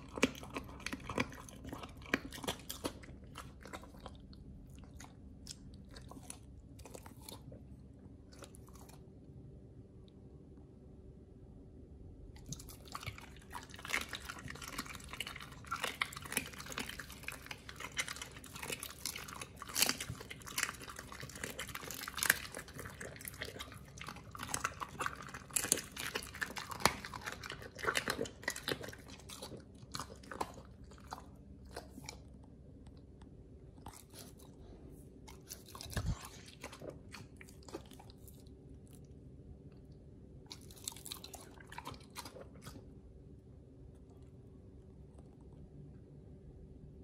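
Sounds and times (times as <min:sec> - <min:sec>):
dog crunching bone: 0:00.0 - 0:09.0, 0:12.4 - 0:32.6, 0:35.2 - 0:38.5, 0:40.5 - 0:43.0.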